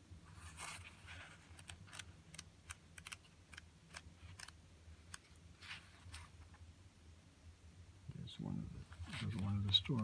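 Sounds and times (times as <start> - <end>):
magazine pages turning: 9.0 - 10.0.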